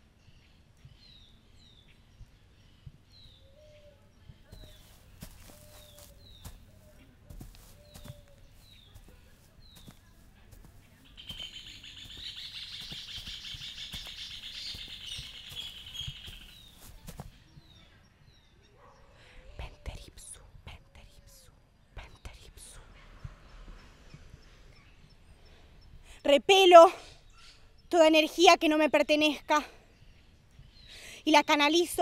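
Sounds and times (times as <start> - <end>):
birds singing: 0.0 - 32.0
rapid high bird trill: 11.0 - 16.8.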